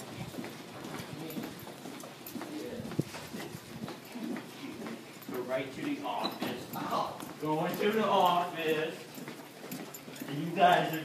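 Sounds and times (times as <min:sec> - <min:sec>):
footsteps on hard floor: 0:00.0 - 0:11.0.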